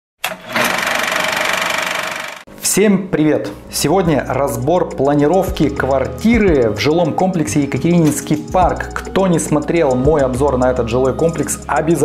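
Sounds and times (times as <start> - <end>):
film projector rattle: 0.2 - 2.4.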